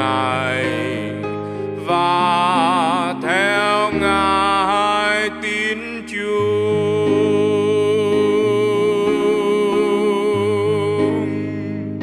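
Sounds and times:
person singing: 0.0 - 12.0
piano: 0.0 - 12.0.

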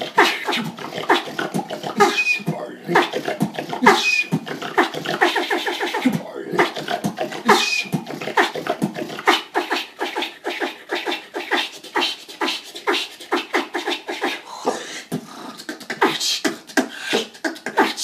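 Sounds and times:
high vocal squeaks: 0.0 - 14.4
person beatboxing: 0.0 - 18.0.

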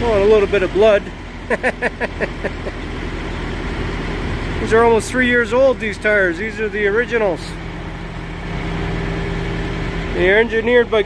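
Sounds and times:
low engine rumble: 0.0 - 11.0
man laughing: 1.4 - 2.9.

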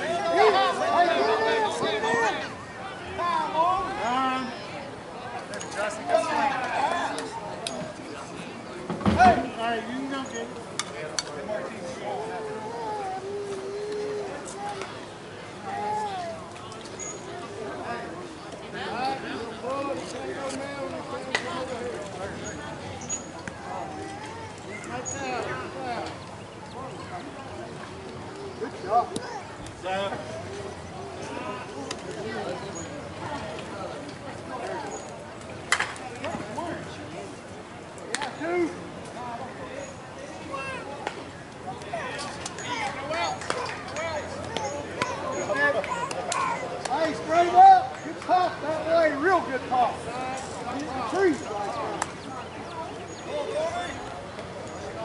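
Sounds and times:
players calling out: 0.0 - 34.0.

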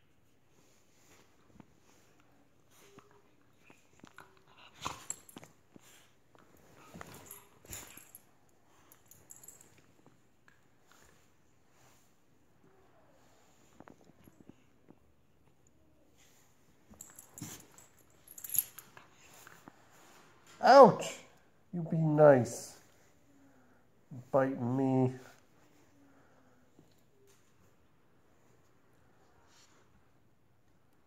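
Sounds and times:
faint clicks and rustles: 0.0 - 20.6
puppy scuffling and biting: 1.1 - 8.2.

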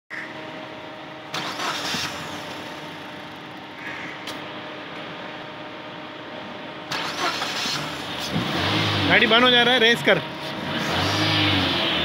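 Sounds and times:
car engine idling: 0.1 - 12.0.

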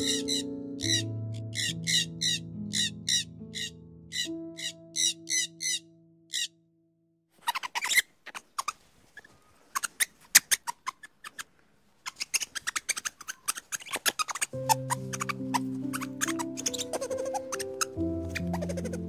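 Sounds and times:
background music: 0.0 - 6.5, 14.6 - 19.0
bird squawking calls: 0.0 - 6.5, 12.1 - 19.0.

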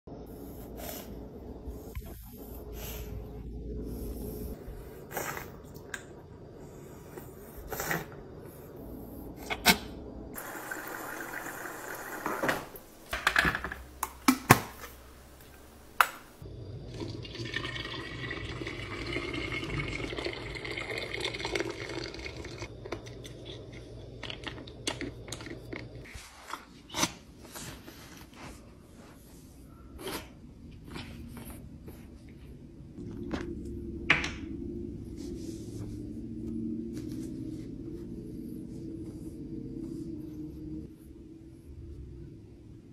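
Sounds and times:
water pouring into bottle: 16.9 - 22.7.

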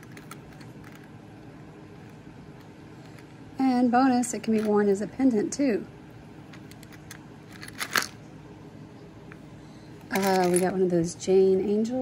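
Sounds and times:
metal jewelry clinking: 6.5 - 8.2, 10.1 - 10.9.

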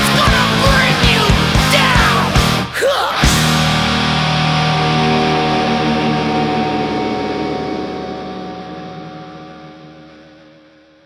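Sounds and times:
rock music: 0.0 - 11.0
distorted electric guitar chord: 3.4 - 11.0.

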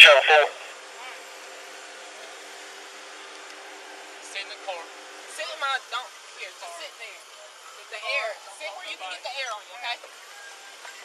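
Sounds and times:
loud man's voice: 0.0 - 0.6
faint voices: 0.0 - 1.6.

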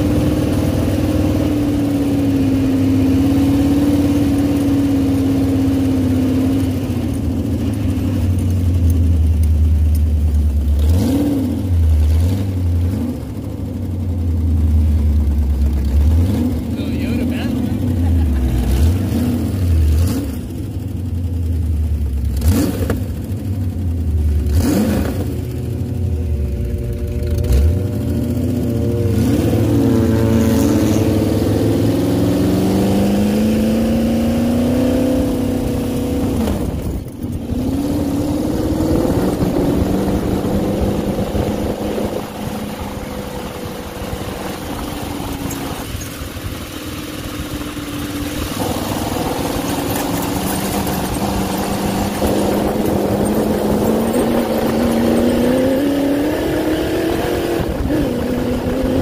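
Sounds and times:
buggy engine revving: 0.0 - 59.0
wind: 0.0 - 59.0
tyres on ground: 36.8 - 57.0.

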